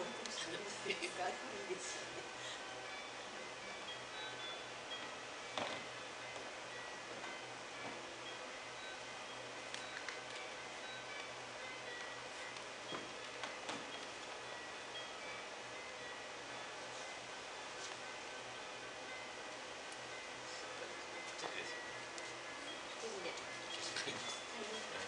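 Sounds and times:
chime-like ambient music: 0:00.0 - 0:12.6
low steady hum: 0:00.0 - 0:25.0.

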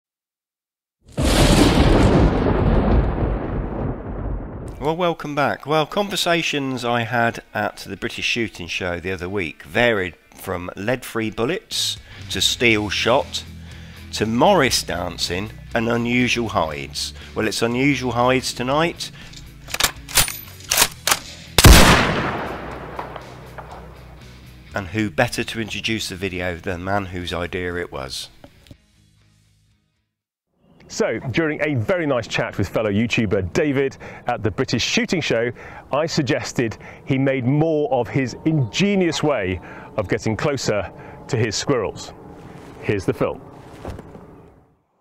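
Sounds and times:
boom rumble: 0:01.2 - 0:04.8, 0:21.6 - 0:23.8
gunshots: 0:19.8 - 0:24.0
loud gunshot with echo: 0:21.6 - 0:23.8.

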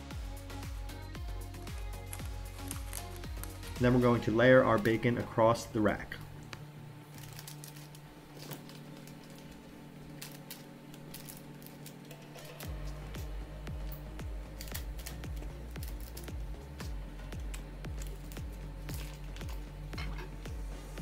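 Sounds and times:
deep bass beat: 0:00.0 - 0:05.4, 0:12.7 - 0:21.0
music with sustained tones: 0:00.0 - 0:21.0.

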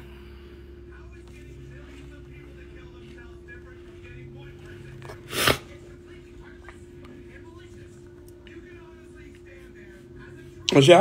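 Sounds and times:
person sneezing: 0:05.3 - 0:05.7.

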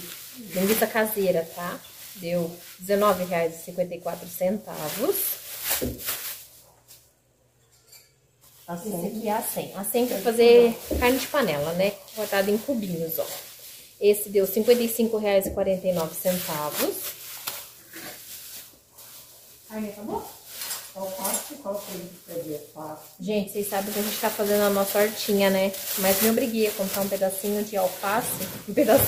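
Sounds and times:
plastic bag crinkling: 0:00.0 - 0:07.1, 0:08.5 - 0:29.0.

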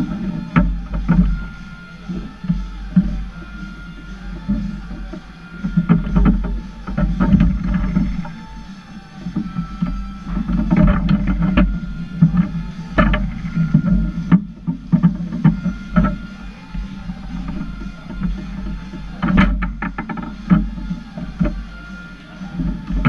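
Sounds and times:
background music: 0:00.0 - 0:23.0
rods knocking against bumpers: 0:00.0 - 0:23.0.

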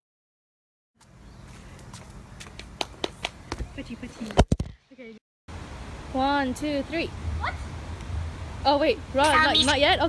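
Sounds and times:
faint outdoor background noise: 0:01.0 - 0:10.0.

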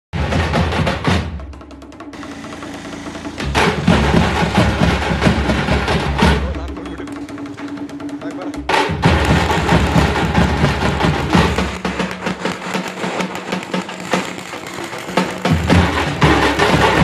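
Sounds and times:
frame drums beating fast rhythm: 0:00.2 - 0:17.0.

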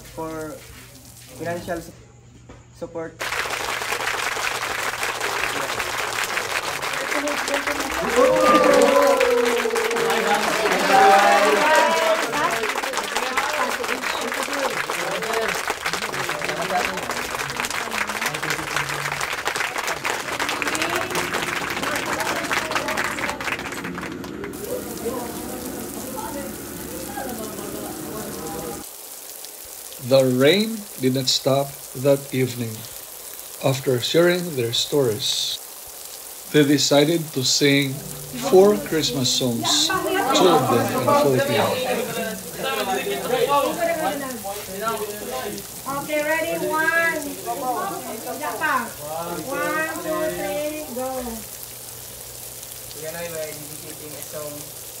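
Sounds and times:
people talking: 0:00.0 - 0:00.6, 0:07.0 - 0:28.8, 0:30.0 - 0:32.9, 0:33.6 - 0:35.6, 0:36.5 - 0:51.5
rain hissing: 0:00.0 - 0:02.2, 0:03.2 - 0:55.0
person speaking: 0:30.0 - 0:32.9, 0:33.6 - 0:35.6, 0:36.5 - 0:48.3.

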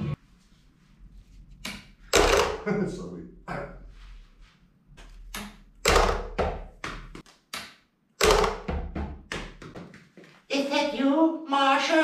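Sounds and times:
dice knocking on plastic table: 0:05.4 - 0:10.0.

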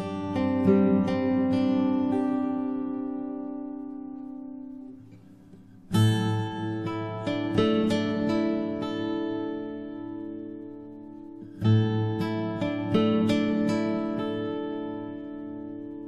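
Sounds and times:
acoustic guitar picked arpeggios: 0:00.0 - 0:16.0.

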